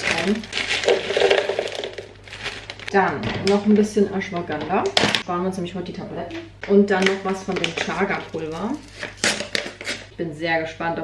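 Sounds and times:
frozen berries rattling into jug: 0.0 - 2.9, 7.2 - 10.1
plastic bag crinkling: 0.0 - 2.9, 7.2 - 10.1.

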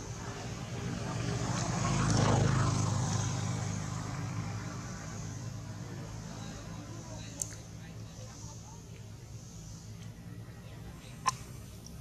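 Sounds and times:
passing vehicle engine: 0.0 - 12.0.

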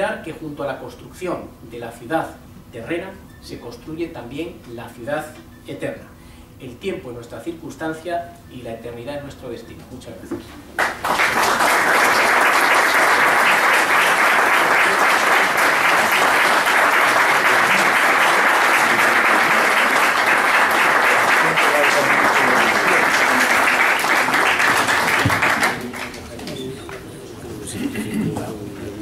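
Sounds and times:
audience applauding: 10.8 - 26.4
quiet voices: 14.2 - 29.0.

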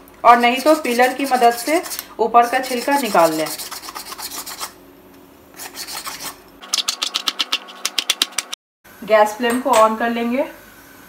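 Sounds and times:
knife scraping gourd skin: 0.4 - 4.8, 5.6 - 8.4.

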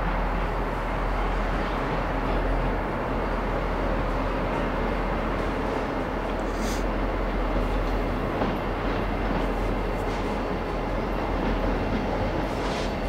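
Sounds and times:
diesel locomotives rumbling: 0.0 - 13.0.

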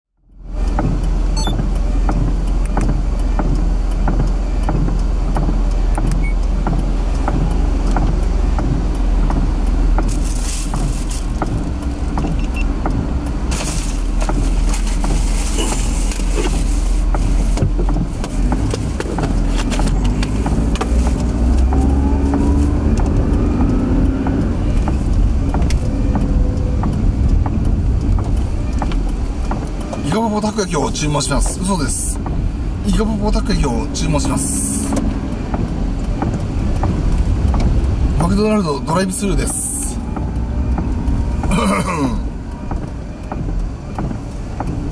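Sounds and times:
engine and tyre rumble: 0.1 - 44.9.

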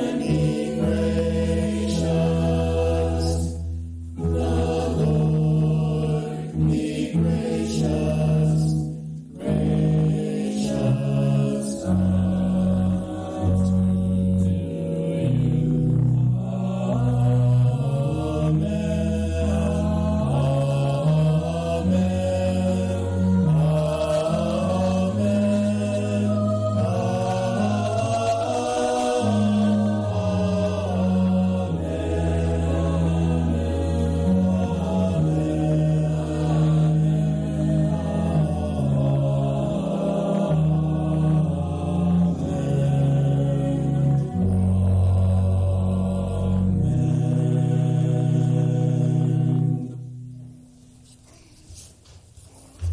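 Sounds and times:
mixed choir singing chords: 0.0 - 50.9.

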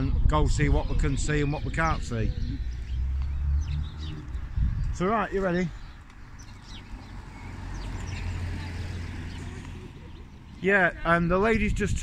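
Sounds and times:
low street rumble: 0.9 - 12.0.

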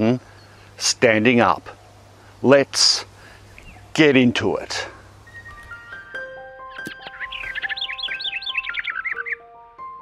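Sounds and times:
quick bird chirps: 6.7 - 9.4.

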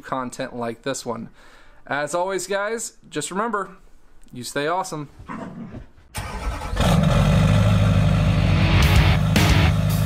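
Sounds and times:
truck engine starting and running: 6.1 - 10.0.

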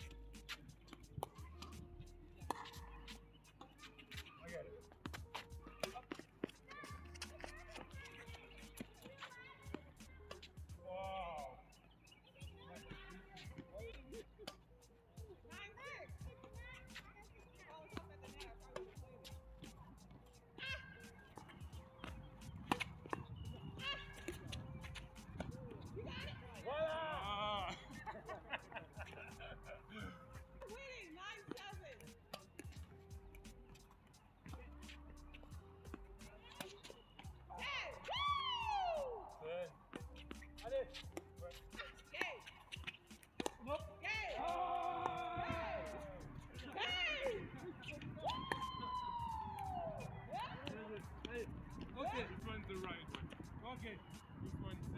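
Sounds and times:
rackets striking tennis ball: 0.0 - 54.9
sneakers squeaking on court: 0.0 - 54.9.

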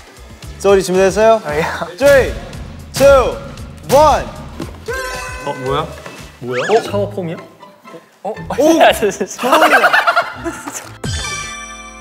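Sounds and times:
young men exclaiming and laughing: 1.4 - 7.4, 8.3 - 10.7.

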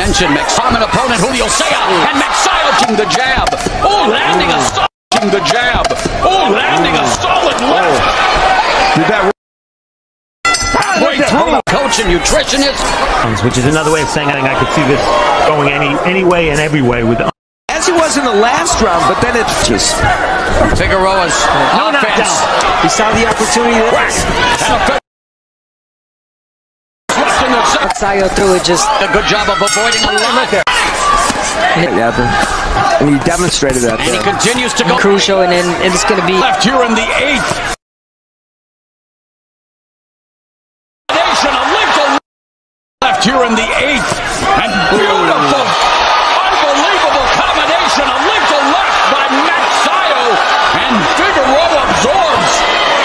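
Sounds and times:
arena crowd noise: 0.0 - 9.4, 10.5 - 25.0, 27.1 - 37.8, 41.1 - 42.2, 43.0 - 53.0
voices calling out: 27.1 - 37.8, 43.0 - 53.0.

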